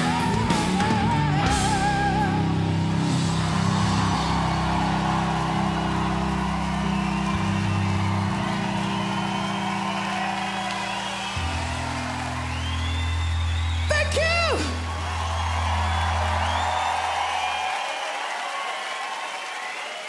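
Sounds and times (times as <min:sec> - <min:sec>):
rock band playing: 0:00.0 - 0:17.8
crowd cheering and whooping: 0:01.4 - 0:20.0.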